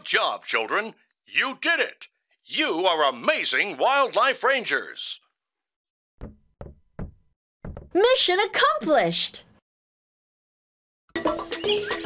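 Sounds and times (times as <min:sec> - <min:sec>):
cartoon knocks: 0:06.2 - 0:08.1.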